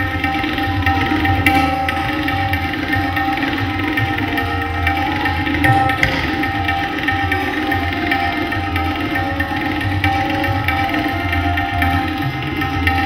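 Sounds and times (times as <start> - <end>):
bowed sarangi: 0.0 - 13.0
harmonium: 0.0 - 13.0
tabla strokes: 0.0 - 13.0.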